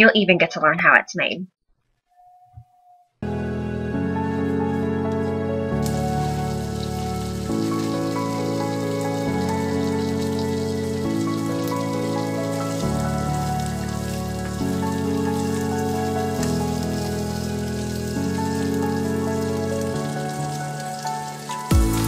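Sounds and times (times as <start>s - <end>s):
slow sustained chords music: 3.2s - 22.0s
sausage sizzling in a frying pan: 5.8s - 22.0s.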